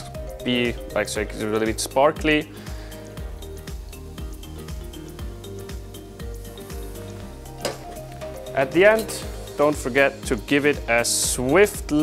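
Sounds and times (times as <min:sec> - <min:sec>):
background music with steady beat: 0:00.0 - 0:12.0
glass bottle set down: 0:07.6 - 0:08.1.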